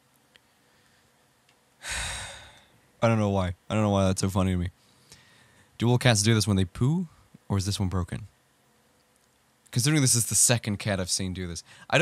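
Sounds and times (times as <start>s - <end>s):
man sighing: 1.8s - 2.7s.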